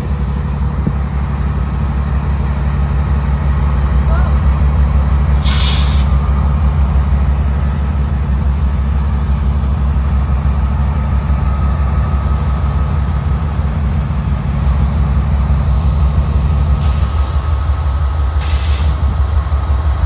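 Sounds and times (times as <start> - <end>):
diesel locomotive engine rumbling: 0.0 - 20.0
air hiss: 5.4 - 6.2, 18.4 - 19.1.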